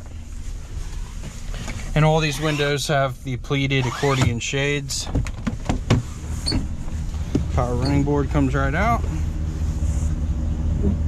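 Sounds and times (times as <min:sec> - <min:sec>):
running board motor: 0:03.8 - 0:04.3.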